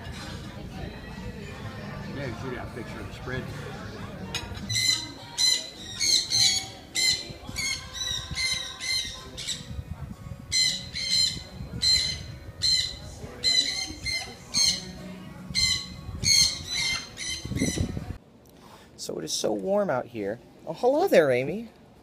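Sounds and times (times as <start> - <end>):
macaws squawking: 4.7 - 9.7, 10.5 - 15.0, 15.6 - 17.9.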